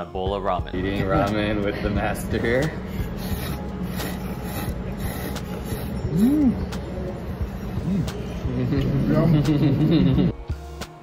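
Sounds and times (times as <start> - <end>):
low room hum: 0.6 - 10.4.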